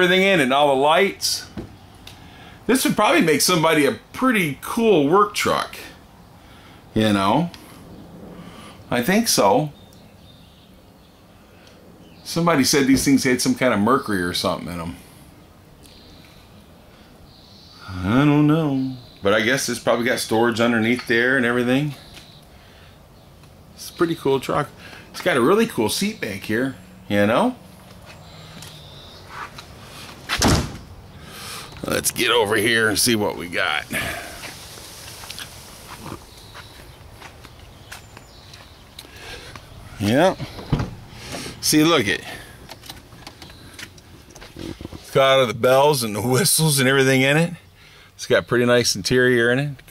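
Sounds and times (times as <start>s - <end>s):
footsteps on grass: 34.4s - 38.8s.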